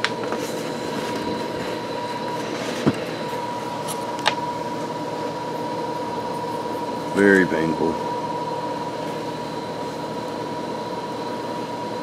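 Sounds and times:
mechanical hum with whine: 0.0 - 12.0.

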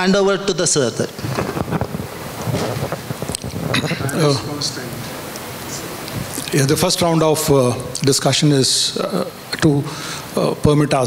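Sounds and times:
microphone handling noise: 1.1 - 6.6.

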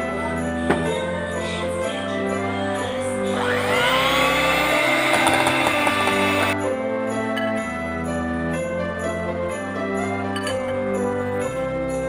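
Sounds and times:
background music: 0.0 - 12.0
electric hand mixer whirring: 3.3 - 6.6.

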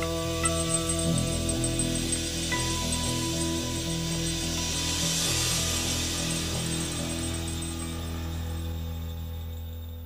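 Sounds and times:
cymbals hissing: 0.0 - 9.5.

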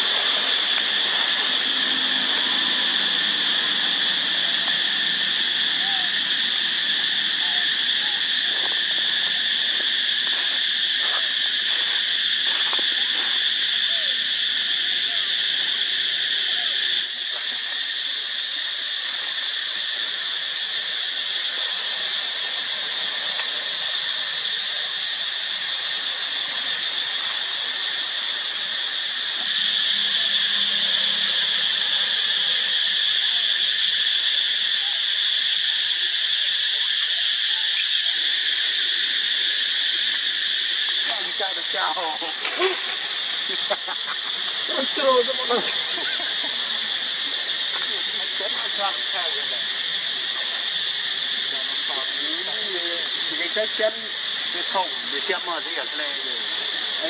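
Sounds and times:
insects droning: 0.0 - 57.0.

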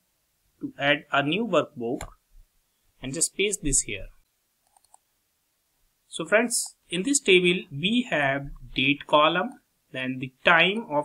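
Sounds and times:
computer mouse clicks: 4.6 - 5.1.

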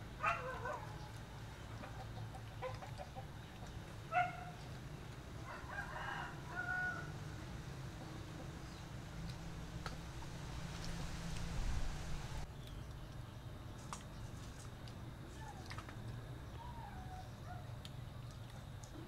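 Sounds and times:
steady low hum: 0.0 - 19.0
chickens clucking and squawking: 0.2 - 4.6.

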